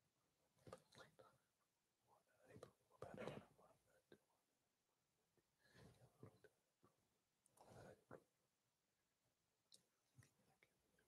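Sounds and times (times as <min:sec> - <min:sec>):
faint whispered murmur: 0:00.7 - 0:01.5, 0:02.1 - 0:04.4, 0:07.5 - 0:08.3.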